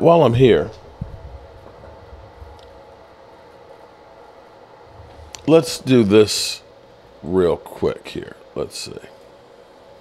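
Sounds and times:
faint steady hum: 0.0 - 10.0
low rumble: 0.3 - 5.5.

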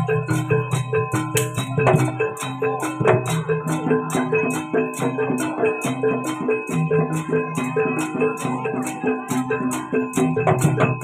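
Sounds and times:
drums: 0.0 - 11.0
high cymbal-like hits: 0.0 - 11.0
metallophones playing melody: 0.0 - 11.0.

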